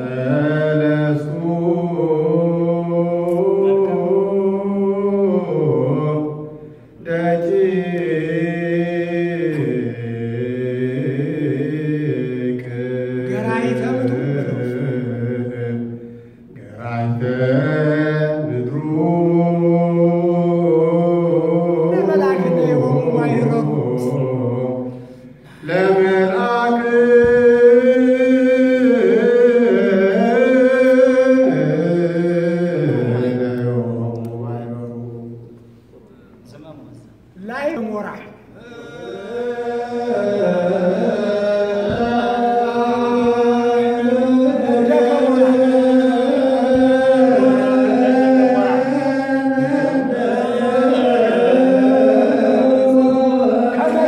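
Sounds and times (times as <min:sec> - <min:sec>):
men chanting together: 0:00.0 - 0:35.6, 0:38.5 - 0:54.0
amplified leading voice: 0:13.2 - 0:15.2, 0:21.6 - 0:24.6.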